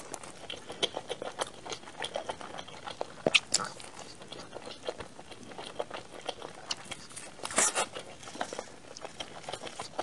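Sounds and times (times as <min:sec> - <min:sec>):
chewing with wet mouth clicks: 0:00.0 - 0:10.0.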